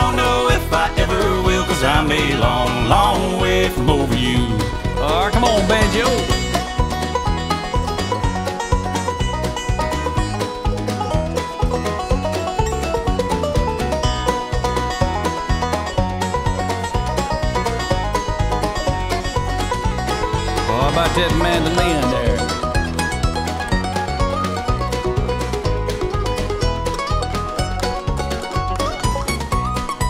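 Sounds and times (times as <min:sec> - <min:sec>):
banjo picking fast rolling notes: 0:00.0 - 0:30.0
bass and drums: 0:00.0 - 0:30.0.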